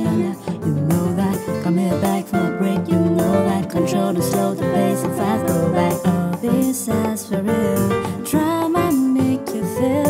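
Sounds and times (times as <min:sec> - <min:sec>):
acoustic guitar music: 0:00.0 - 0:09.9.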